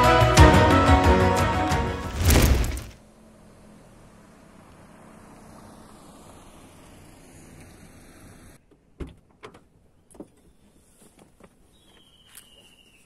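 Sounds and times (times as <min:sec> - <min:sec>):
steady outdoor noise: 0:01.5 - 0:13.0.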